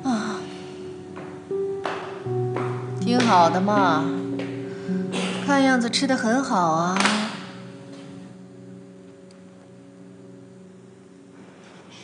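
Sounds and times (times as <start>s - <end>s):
soft sustained music score: 0.0s - 12.0s
woman speaking: 3.0s - 4.3s, 5.4s - 7.5s.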